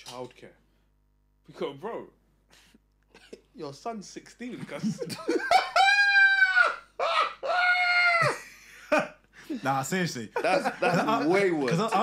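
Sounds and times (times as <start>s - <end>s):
high-pitched squealing laugh: 5.2s - 8.6s.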